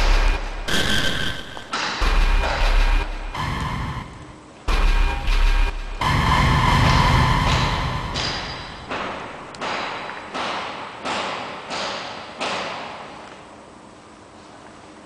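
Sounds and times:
loud ringing impact with rumble: 0:00.0 - 0:10.0
echoing thuds: 0:00.0 - 0:13.0.

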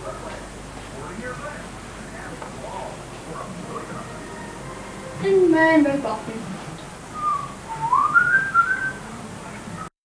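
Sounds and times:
person whistling: 0:07.1 - 0:09.0.

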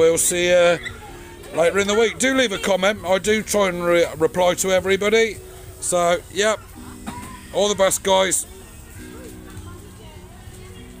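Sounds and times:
faint voices: 0:00.0 - 0:11.0
music: 0:00.0 - 0:11.0.

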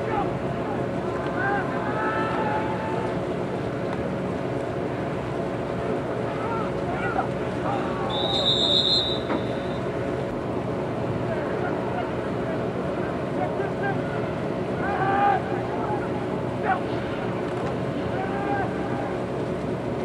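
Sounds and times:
faint distant shouts: 0:00.0 - 0:03.2, 0:13.8 - 0:17.0, 0:18.1 - 0:19.2
outdoor hum and noise: 0:00.0 - 0:20.0
whistle blast: 0:08.1 - 0:09.9.

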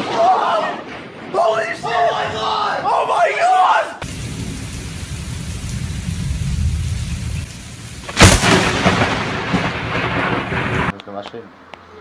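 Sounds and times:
loud crack of lightning strike: 0:04.0 - 0:11.0
low rumble of thunder: 0:04.0 - 0:11.0
steady hiss of rain: 0:04.0 - 0:12.0.

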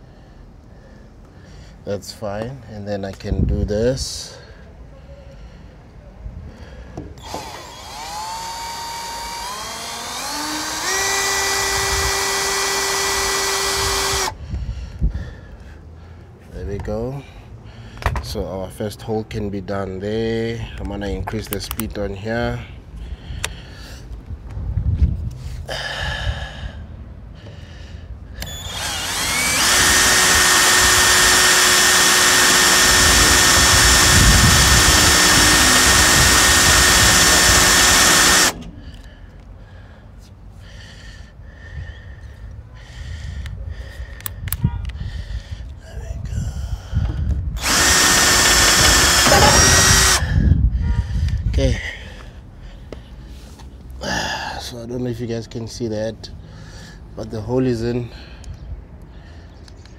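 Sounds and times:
cordless drill whining: 0:07.2 - 0:14.4, 0:28.4 - 0:39.1, 0:47.6 - 0:50.4.

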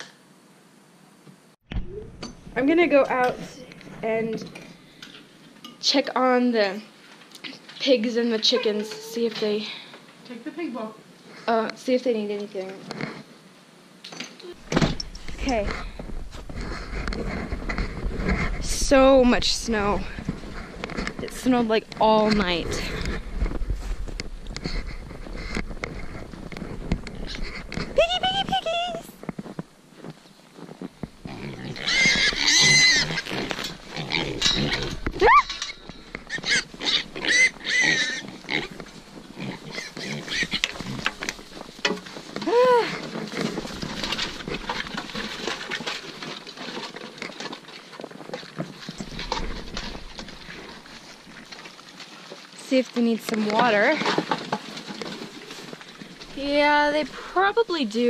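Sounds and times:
rustling and clicking: 0:14.0 - 0:58.0
piglets squealing: 0:31.3 - 0:38.8, 0:39.4 - 0:41.0.

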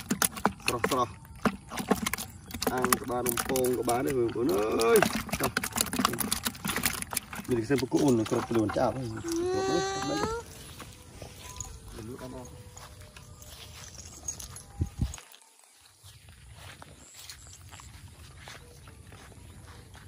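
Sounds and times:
footsteps in flip-flops on grass: 0:07.5 - 0:20.0
man speaking: 0:11.8 - 0:12.7
wind rumble on microphone: 0:14.5 - 0:15.2.

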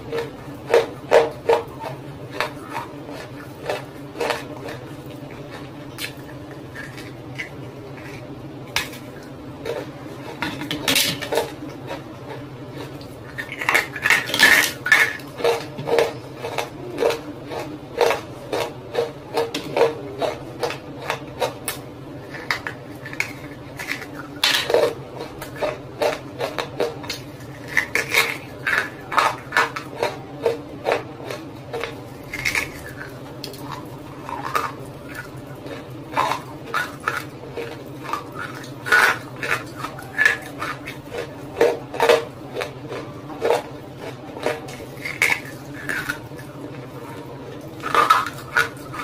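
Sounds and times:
crunching and chewing: 0:00.0 - 0:49.0
steady low hum: 0:00.0 - 0:49.0.

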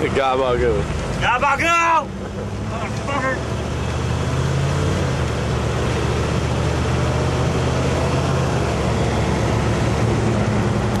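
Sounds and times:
vehicle engine and road drone: 0:00.0 - 0:11.0.

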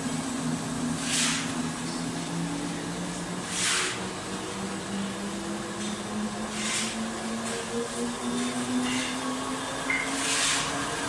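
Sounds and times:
paper slitting machine humming: 0:00.0 - 0:11.0.

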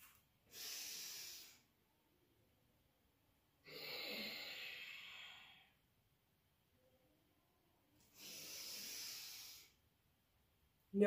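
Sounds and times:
woman exhaling: 0:03.6 - 0:05.8, 0:08.2 - 0:09.8.

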